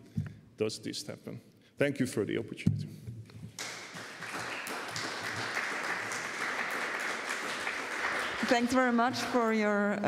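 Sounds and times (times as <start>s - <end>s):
audience applauding: 3.6s - 9.5s.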